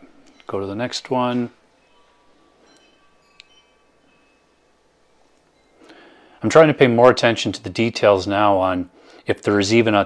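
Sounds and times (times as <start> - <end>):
faint high ringing tones: 0.0 - 8.0.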